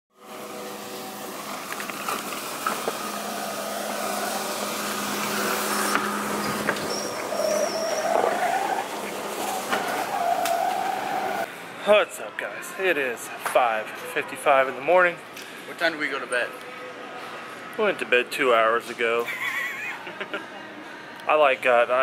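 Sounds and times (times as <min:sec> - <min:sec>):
floor scrubber motor humming: 0:00.2 - 0:11.4
wavering tone: 0:02.9 - 0:11.4.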